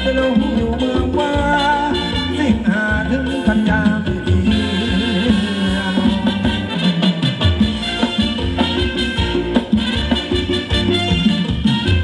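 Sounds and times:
live band playing dance music: 0:00.0 - 0:12.0.

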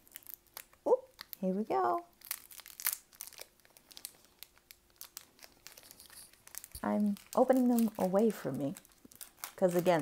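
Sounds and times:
foil wrapper crinkling: 0:00.0 - 0:10.0.

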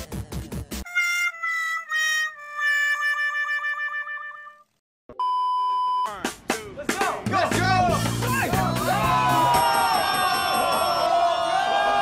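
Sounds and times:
music: 0:00.0 - 0:04.7, 0:06.1 - 0:11.0.

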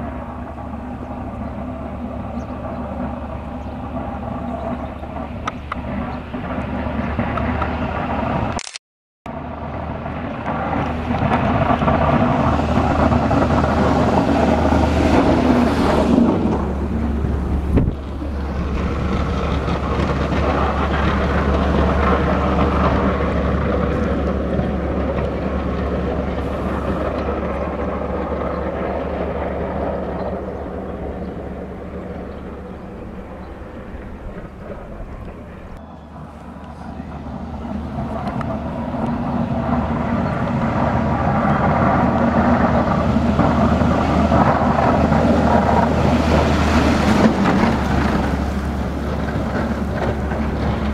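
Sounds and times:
truck engine and tyres passing: 0:00.0 - 0:08.6, 0:09.3 - 0:50.9.

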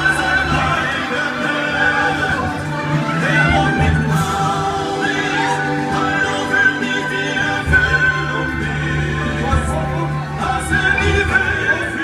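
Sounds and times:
backing accompaniment: 0:00.0 - 0:12.0
operatic tenor singing with vibrato: 0:00.0 - 0:12.0.

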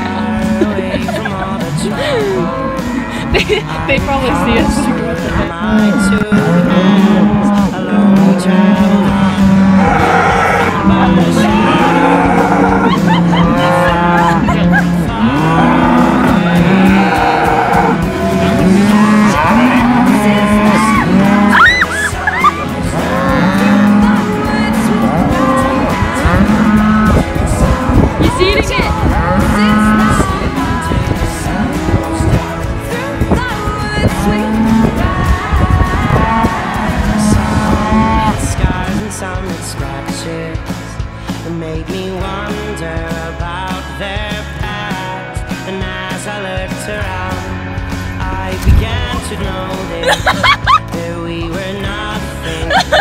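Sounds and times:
background music: 0:00.0 - 0:53.0
cattle mooing: 0:01.8 - 0:30.5, 0:35.9 - 0:38.6.

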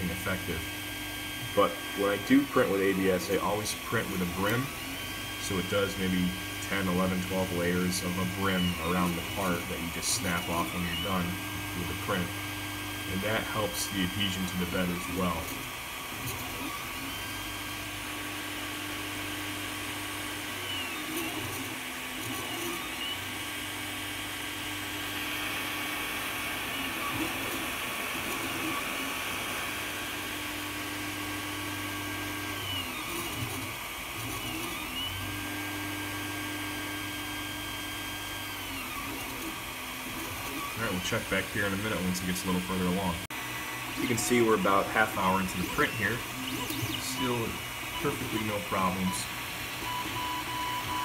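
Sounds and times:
printer stepper motors humming: 0:00.0 - 0:51.0.

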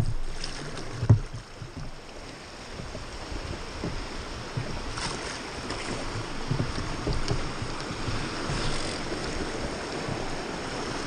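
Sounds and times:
river water rushing and splashing: 0:00.0 - 0:11.0
low thumps: 0:05.7 - 0:10.3.

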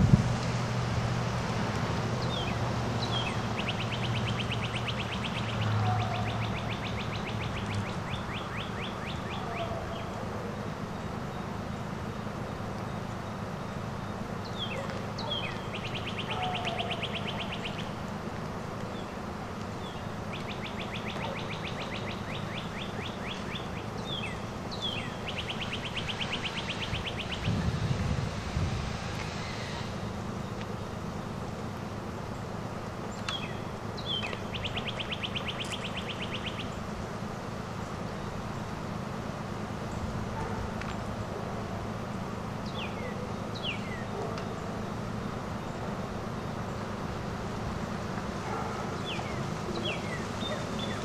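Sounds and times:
songbird trilling: 0:02.2 - 0:10.2, 0:14.4 - 0:17.9, 0:19.8 - 0:27.7, 0:33.1 - 0:36.8, 0:42.6 - 0:44.1, 0:49.0 - 0:51.0.

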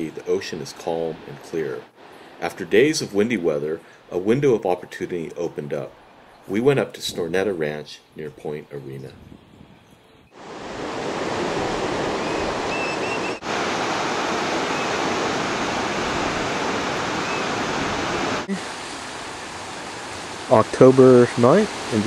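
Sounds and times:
ocean surf breaking over rocks: 0:10.4 - 0:22.0
faint bird chirps: 0:12.2 - 0:13.4.

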